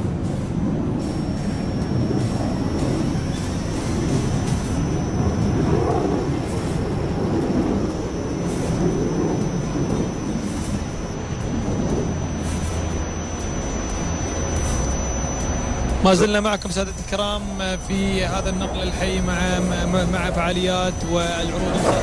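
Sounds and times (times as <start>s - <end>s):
jet engine rumble: 0.0s - 22.0s.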